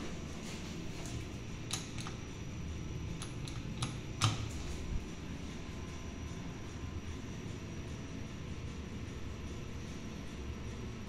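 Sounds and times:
machinery clicks and clunk: 0:00.0 - 0:02.3, 0:03.1 - 0:05.0
lift machinery hum: 0:00.0 - 0:11.0.

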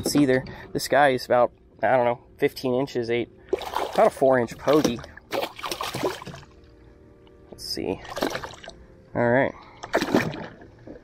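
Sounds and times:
fish splashing at water surface: 0:04.7 - 0:06.5, 0:08.1 - 0:08.7, 0:09.8 - 0:10.6.

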